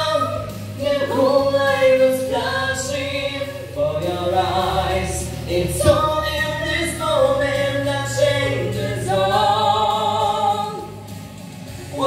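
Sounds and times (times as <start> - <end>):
musical accompaniment: 0.0 - 12.0
vocal duet singing: 0.0 - 12.0
singers breathing: 11.1 - 12.0.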